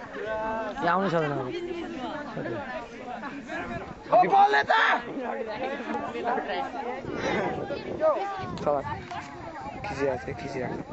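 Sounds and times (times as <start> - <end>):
people chattering: 0.0 - 10.9.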